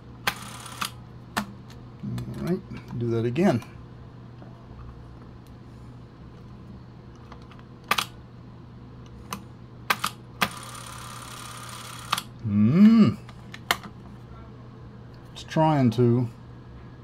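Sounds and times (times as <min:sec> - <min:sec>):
camera motor whirring: 0:00.3 - 0:01.0, 0:10.0 - 0:12.3.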